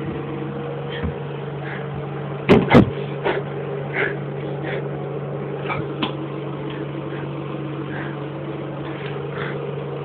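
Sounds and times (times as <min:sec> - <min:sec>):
electrical hum: 0:00.0 - 0:10.0
loud knocks: 0:02.5 - 0:03.0.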